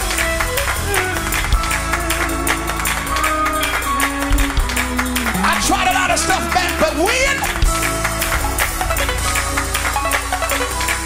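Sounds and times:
bass line: 0.0s - 11.0s
fast driving drums: 0.0s - 11.0s
keyboard chords: 0.0s - 11.0s.

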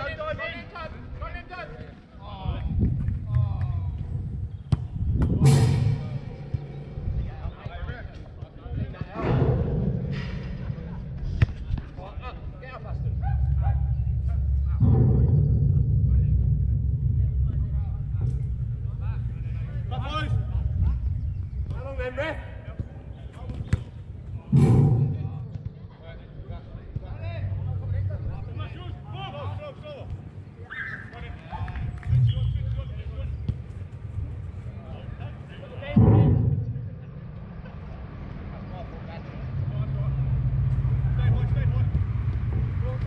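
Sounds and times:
steady low rumble: 2.4s - 23.3s, 24.0s - 30.6s, 31.7s - 43.0s.

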